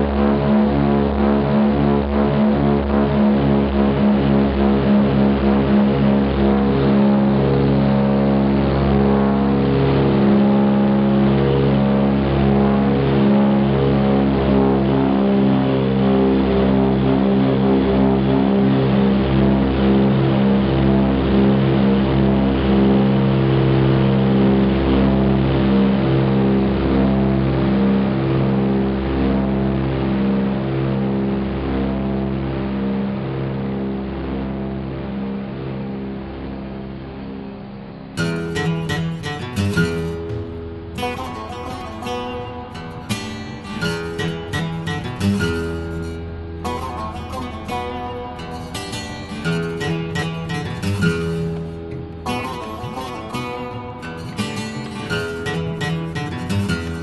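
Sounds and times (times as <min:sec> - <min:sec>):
propeller plane engines droning: 0:00.0 - 0:54.4.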